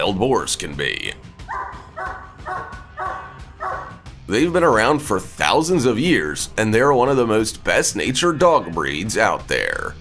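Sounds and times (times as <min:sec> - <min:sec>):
dog barking: 0:01.5 - 0:04.0.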